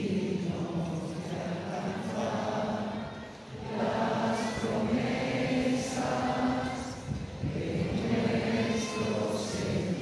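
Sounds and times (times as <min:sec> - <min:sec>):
low rumble of crowd noise: 0:00.0 - 0:10.0
many voices singing a hymn: 0:00.0 - 0:10.0.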